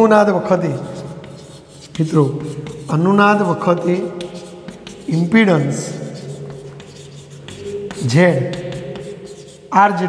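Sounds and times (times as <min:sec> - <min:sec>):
chalk scratching on blackboard: 0:00.6 - 0:10.0.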